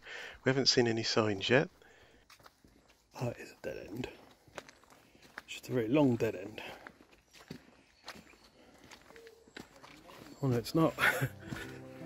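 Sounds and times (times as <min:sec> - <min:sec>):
footsteps on leafy dirt path: 0:00.2 - 0:12.0.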